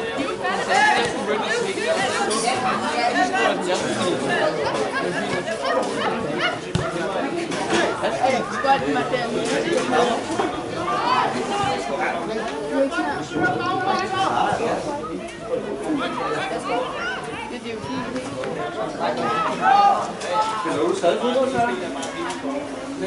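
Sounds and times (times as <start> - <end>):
people chatting: 0.0 - 23.0.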